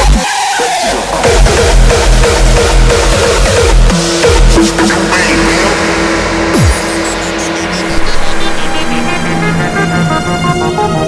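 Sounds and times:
electronic dance music: 0.0s - 11.0s
held synth note: 7.2s - 11.0s.

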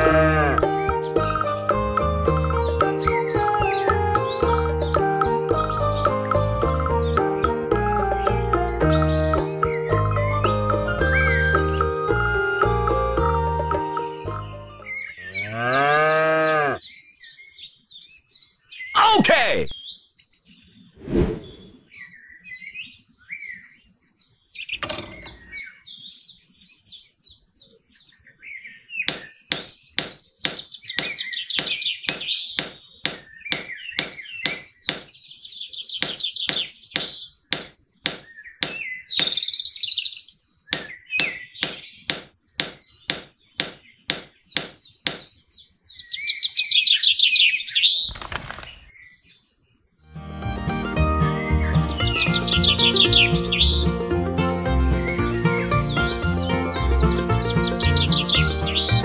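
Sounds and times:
cow mooing: 0.0s - 0.7s, 15.2s - 16.8s
birds chirping: 0.0s - 59.0s
hammer tapping wooden posts: 29.1s - 35.2s, 36.0s - 39.4s, 40.7s - 45.3s.

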